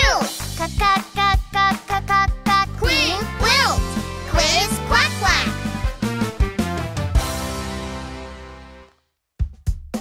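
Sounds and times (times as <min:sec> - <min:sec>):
children's song backing music: 0:00.0 - 0:08.1.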